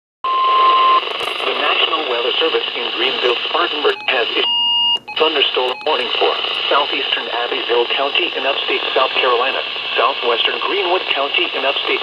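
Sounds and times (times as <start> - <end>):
steady warning alarm tone: 0.3 - 9.9
radio hiss: 1.0 - 4.5, 5.2 - 12.0
broadcast voice speaking: 1.4 - 4.5, 5.2 - 12.0.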